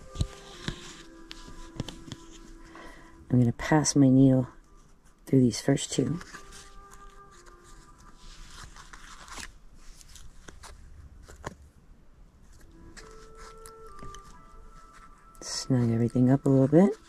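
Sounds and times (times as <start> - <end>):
quiet background music: 0.0 - 17.0.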